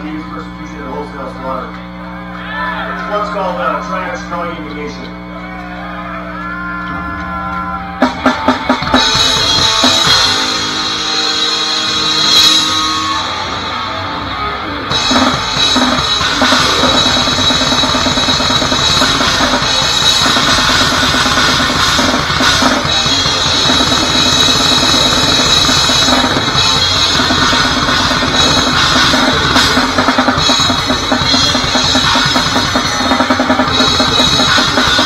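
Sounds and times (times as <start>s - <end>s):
electric guitar and bass chord ringing: 0.0s - 35.0s
grindcore band playing live: 2.7s - 35.0s
fast kick and snare drums: 8.0s - 10.4s, 14.9s - 35.0s.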